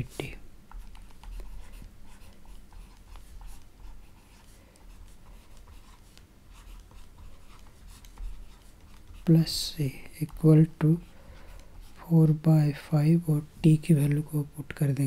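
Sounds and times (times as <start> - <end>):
stylus scratching on tablet screen: 0.0 - 14.9
steady low hum: 0.0 - 15.0.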